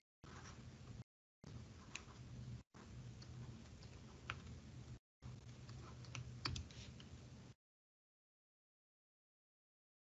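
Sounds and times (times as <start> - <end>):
low steady hum: 0.3 - 7.6.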